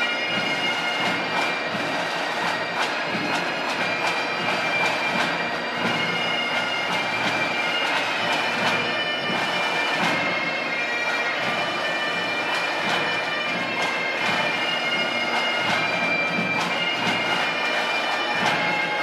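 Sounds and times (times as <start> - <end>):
bagpipes playing: 0.0 - 19.0.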